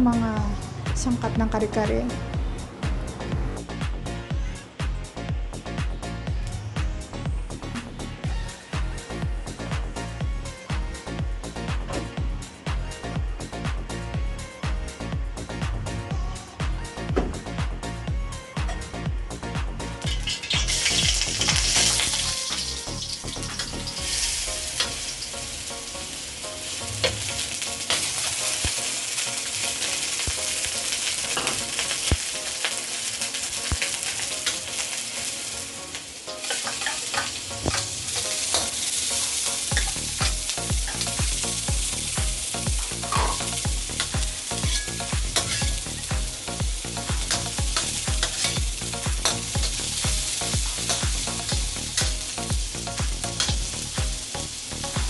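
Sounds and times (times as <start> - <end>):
garlic sizzling in hot oil: 20.0 - 55.0
metal spoon scraping a wok: 36.4 - 37.9, 44.5 - 46.1, 47.3 - 48.6.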